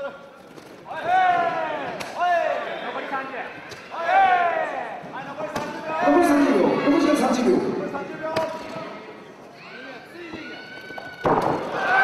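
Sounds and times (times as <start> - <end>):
loud shout: 0.9 - 5.0, 9.6 - 12.0.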